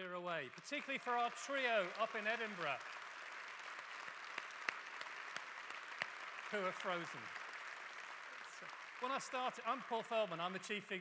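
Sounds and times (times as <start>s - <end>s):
audience applauding: 0.4s - 10.9s.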